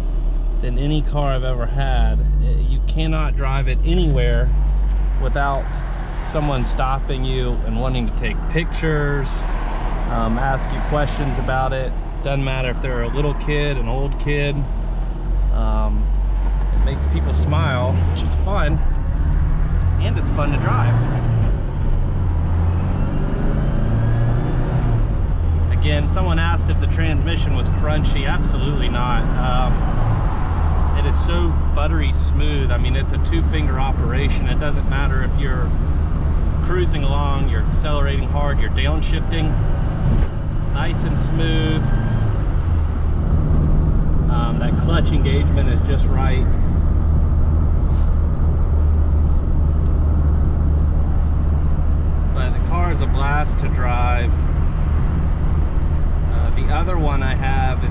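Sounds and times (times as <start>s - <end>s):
car engine and road noise: 0.0s - 57.9s.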